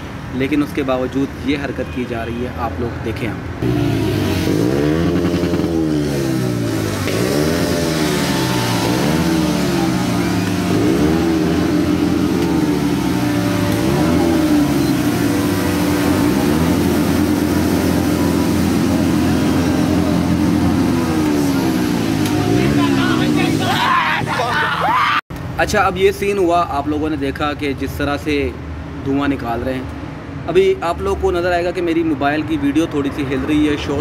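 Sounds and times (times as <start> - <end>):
motorcycle engines revving: 3.6 - 25.0.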